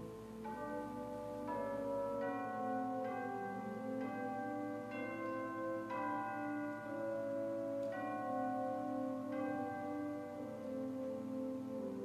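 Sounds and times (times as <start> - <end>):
soft slow keyboard chords: 0.0 - 12.0.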